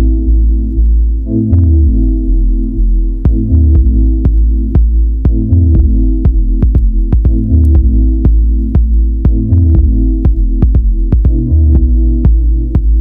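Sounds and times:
deep house track from vinyl: 0.0s - 13.0s.

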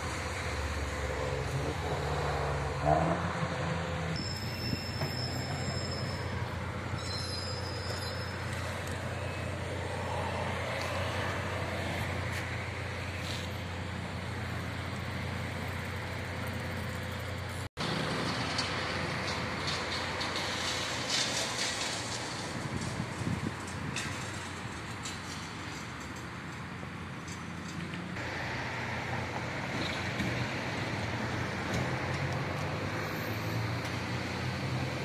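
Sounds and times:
passing cars and buses: 0.0s - 35.0s.

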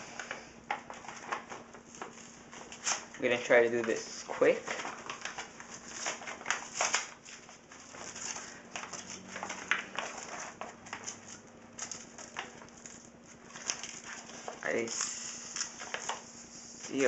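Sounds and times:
paper envelope rustling and crinkling: 0.7s - 17.0s
paper tearing: 4.6s - 17.0s.

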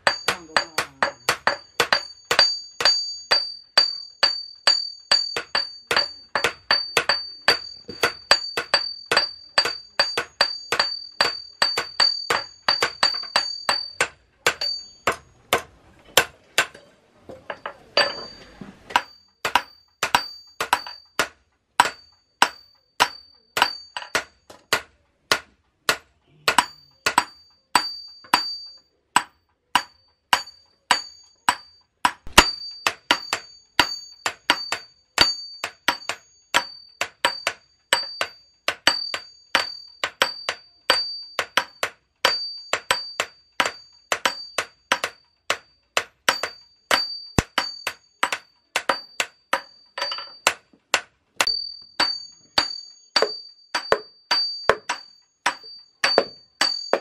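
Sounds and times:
hammer striking metal on anvil: 0.0s - 57.0s.

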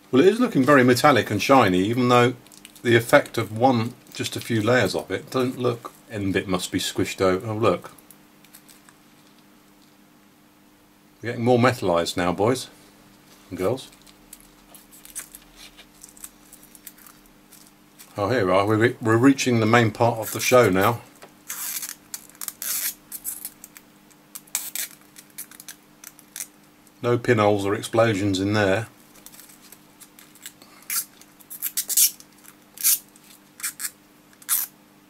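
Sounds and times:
faint steady hum: 0.0s - 35.0s
thin film crinkling: 2.4s - 3.4s, 8.0s - 9.9s, 13.6s - 18.2s, 20.2s - 26.9s, 29.0s - 34.7s.

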